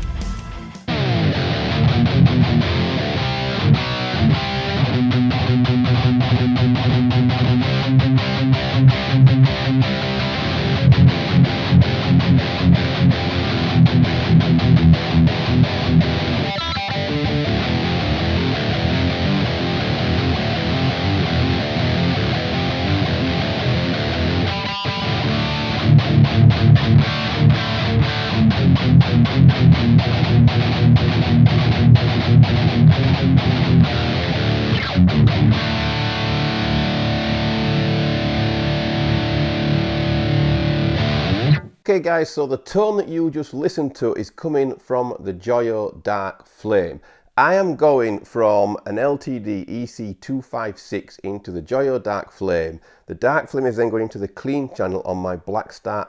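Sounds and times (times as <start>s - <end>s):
distorted electric guitar riffing: 0.0s - 41.8s.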